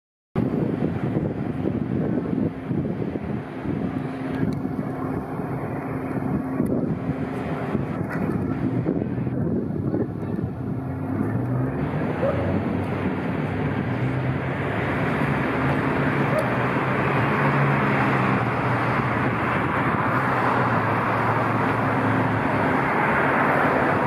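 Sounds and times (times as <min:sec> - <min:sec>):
city street traffic rumble: 0:00.4 - 0:24.0
wind buffeting microphone: 0:00.4 - 0:24.0.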